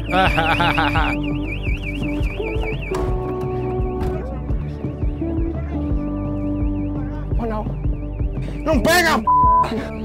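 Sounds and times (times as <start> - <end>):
car alarm warbling siren: 0.0 - 4.3, 5.2 - 10.0
music with held notes and low beat: 0.0 - 10.0.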